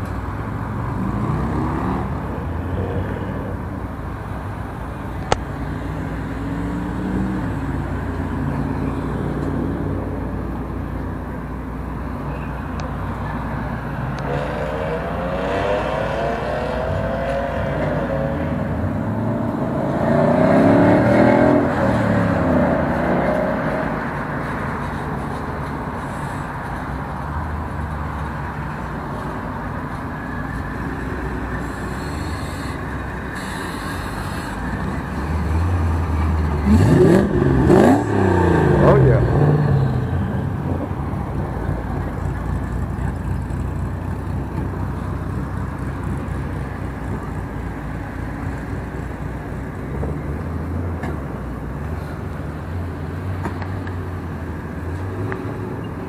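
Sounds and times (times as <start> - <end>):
car engine revving: 30.8 - 41.0.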